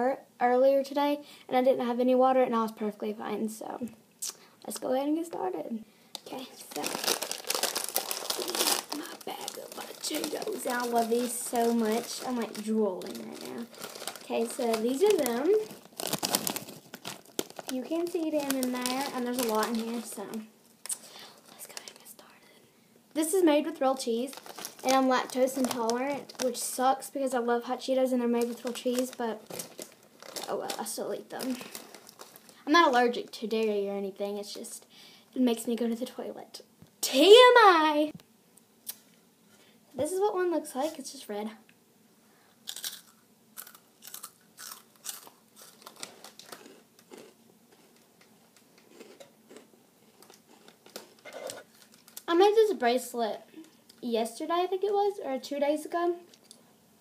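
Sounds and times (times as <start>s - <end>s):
chip bag crinkling: 6.2s - 22.4s, 23.7s - 27.1s, 28.3s - 33.2s, 42.7s - 52.8s
crunchy snack chewing: 6.8s - 17.8s, 42.7s - 48.0s, 48.8s - 52.3s.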